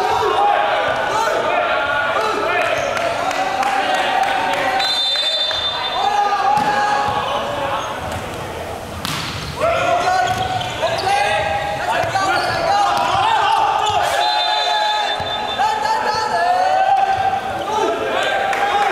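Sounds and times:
players shouting: 0.0 - 8.6, 9.5 - 18.9
volleyball being hit: 6.5 - 7.2, 9.0 - 9.6.

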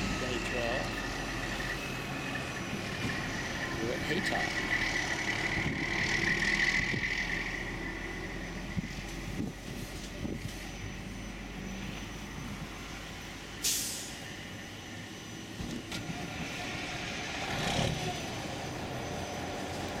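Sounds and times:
vehicle passing: 0.0 - 9.0
road traffic noise: 0.0 - 20.0
truck air brake hiss: 13.6 - 14.3.

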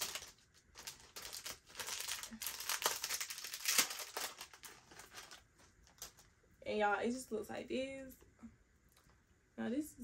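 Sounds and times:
packaging crinkling: 0.0 - 6.3.

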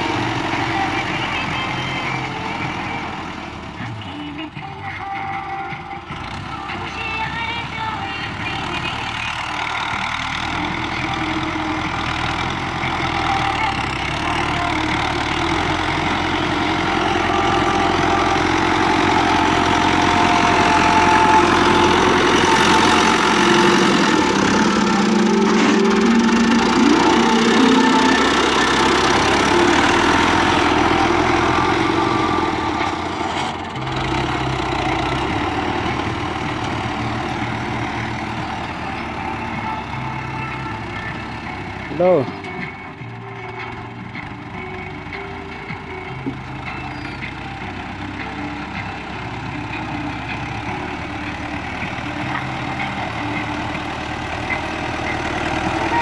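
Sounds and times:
tractor diesel engine under load: 0.0 - 56.0.

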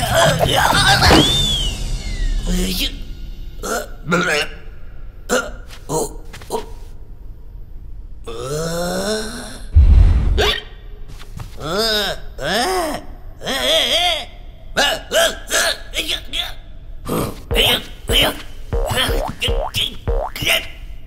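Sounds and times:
loud low boom: 9.8 - 10.9.

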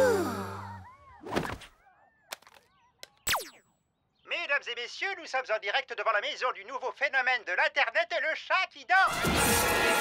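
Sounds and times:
breathy sigh: 0.0 - 0.8.

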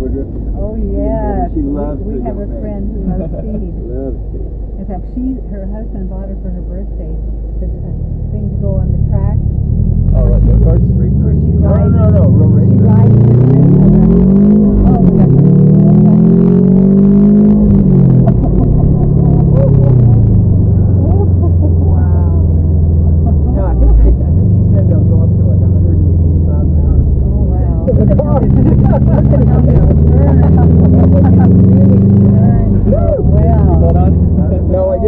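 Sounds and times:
car engine accelerating: 0.0 - 35.0.

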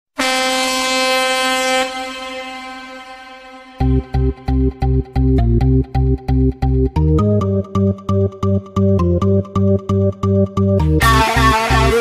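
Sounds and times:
air horn blast: 0.2 - 4.5, 11.0 - 12.0.

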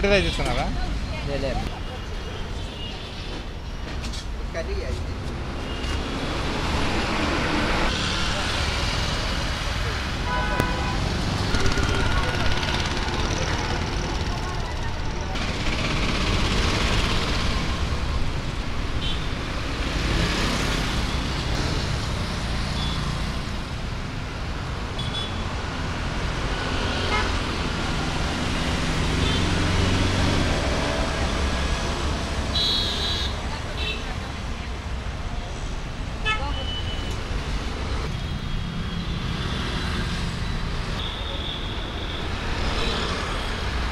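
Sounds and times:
passing vehicles rumbling: 4.2 - 32.6.

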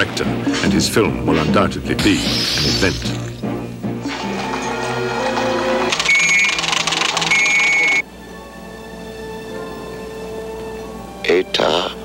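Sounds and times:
film music with held tones: 0.0 - 12.0
fast mechanical clatter: 4.1 - 7.8.

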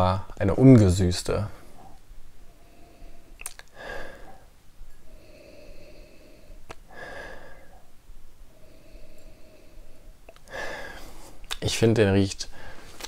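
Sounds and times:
person breathing through the nose: 2.4 - 7.9, 8.5 - 11.4
faint clicks: 9.1 - 9.4, 10.2 - 10.5.

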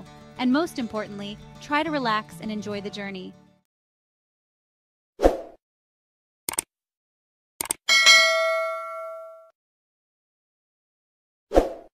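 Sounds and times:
mouse clicks: 6.5 - 6.7, 7.6 - 7.8
notification bell ding: 7.9 - 9.5.

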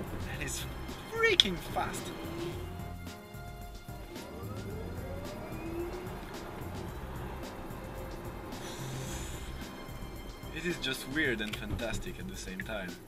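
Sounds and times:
background music with steady beat: 0.0 - 13.0
electric motor whine rising: 1.8 - 3.1, 3.9 - 10.3.

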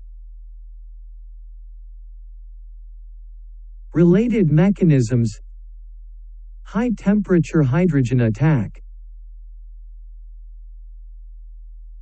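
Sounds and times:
steady low-pitched hum: 0.0 - 12.0.

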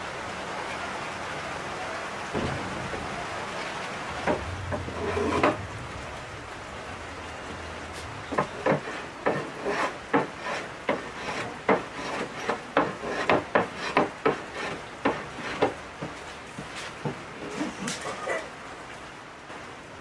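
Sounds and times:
hand plane shaving wood: 4.3 - 5.6, 8.3 - 17.9.

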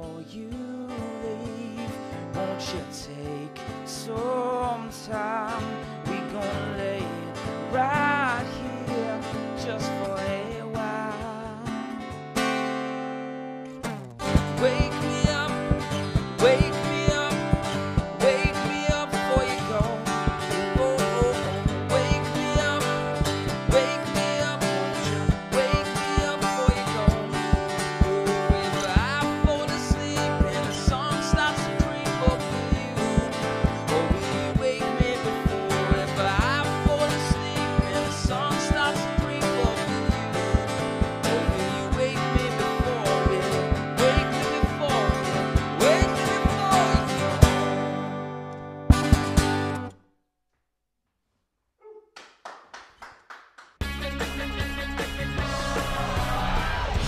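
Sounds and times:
man singing: 0.0 - 12.0, 14.2 - 48.0
acoustic guitar strumming: 0.0 - 50.0.

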